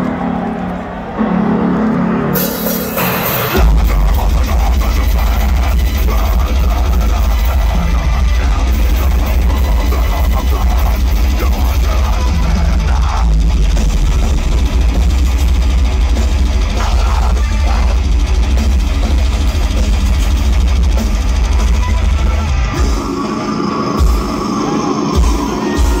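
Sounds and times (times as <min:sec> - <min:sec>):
metal band playing live: 0:00.0 - 0:26.0.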